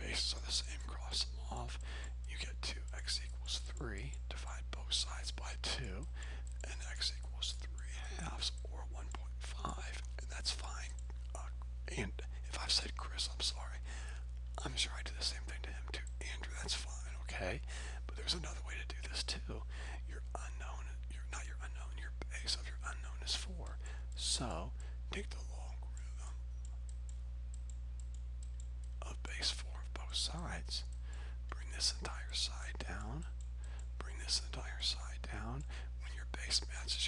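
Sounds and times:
low electrical hum: 0.0 - 37.0.

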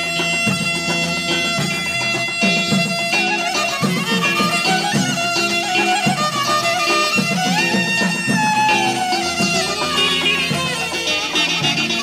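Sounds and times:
folk music on long-necked lute: 0.0 - 12.0.

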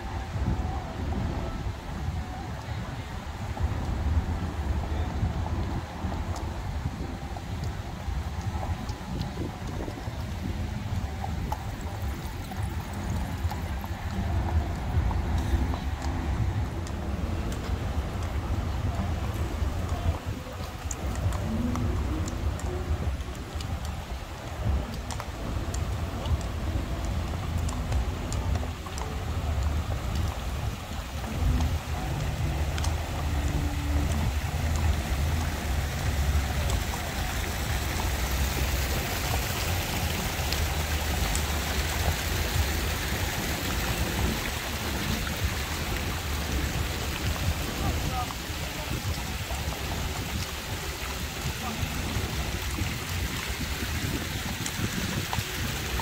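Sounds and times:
fountain water splashing: 0.0 - 56.0
faint clicks: 7.4 - 56.0.

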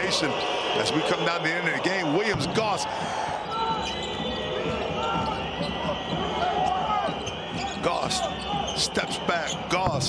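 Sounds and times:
arena crowd noise: 0.0 - 10.0
ball bouncing on court: 2.3 - 2.6, 9.8 - 10.0
shoe squeaks: 5.0 - 9.9.

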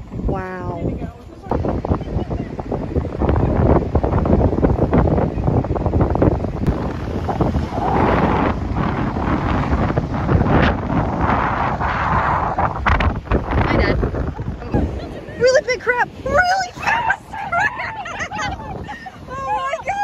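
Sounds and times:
wind buffeting microphone: 0.0 - 20.0
ocean surf: 0.8 - 20.0.

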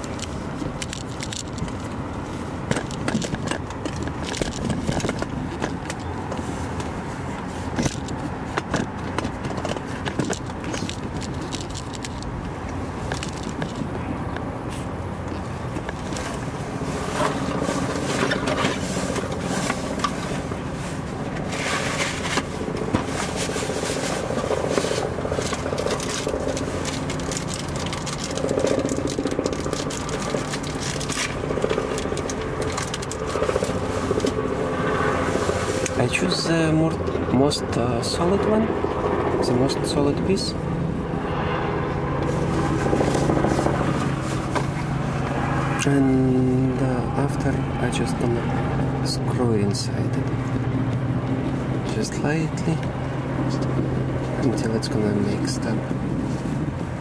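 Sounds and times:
hand tools clicking and scraping metal: 2.6 - 13.9, 14.7 - 20.6, 21.2 - 36.4.

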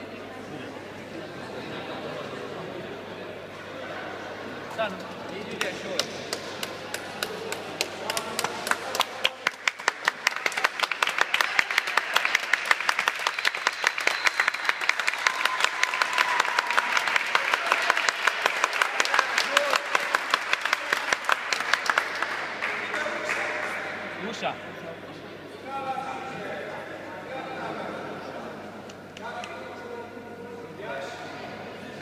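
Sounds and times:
spectators clapping: 4.9 - 24.1.

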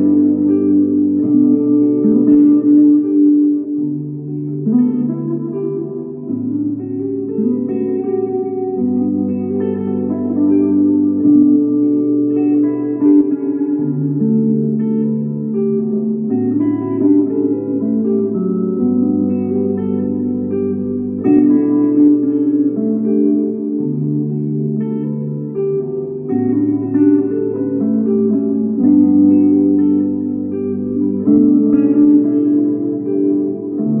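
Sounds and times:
electric guitar chords and melody: 0.0 - 34.0.

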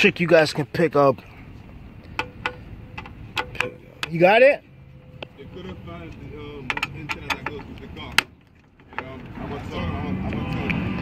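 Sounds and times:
metallic clicks of screws: 6.6 - 9.2.

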